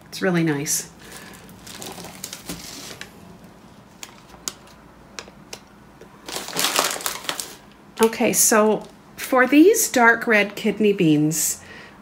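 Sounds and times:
plastic bag crinkling: 1.0s - 4.8s, 6.2s - 7.8s.

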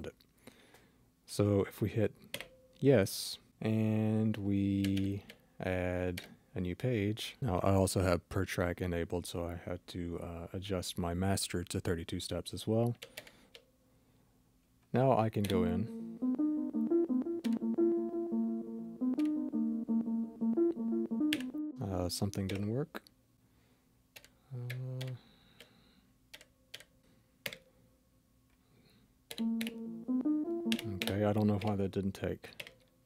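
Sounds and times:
synth sequence of short notes: 15.9s - 21.8s, 29.4s - 31.1s
button clicks: 29.3s - 31.8s.

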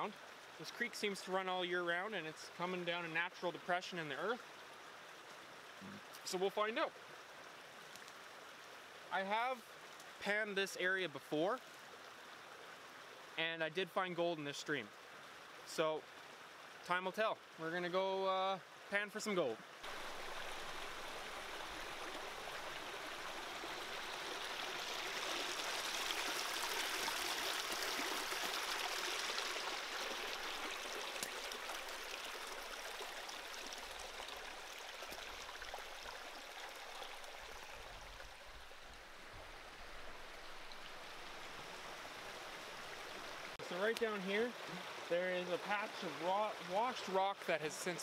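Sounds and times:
forest creek running: 0.0s - 48.0s.

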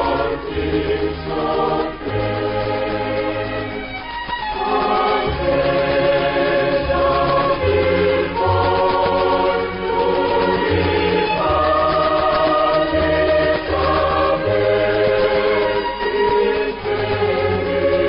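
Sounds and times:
choir singing: 0.0s - 18.0s
orchestral backing: 0.0s - 18.0s.

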